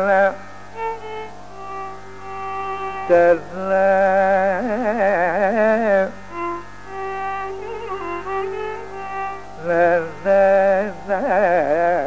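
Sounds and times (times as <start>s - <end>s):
steady drone: 0.0s - 12.0s.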